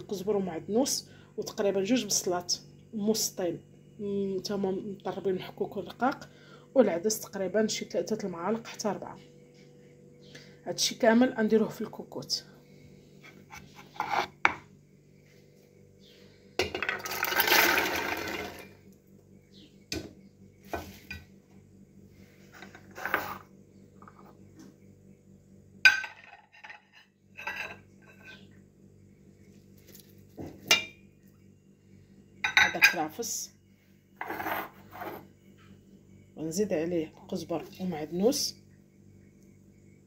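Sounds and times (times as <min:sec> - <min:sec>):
faint steady hum: 0:00.0 - 0:40.0
chickpeas rattling into metal pot: 0:16.7 - 0:18.8.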